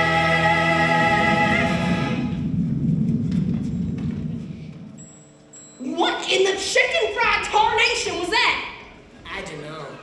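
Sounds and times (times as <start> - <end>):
pit band low notes: 0.0 - 5.6.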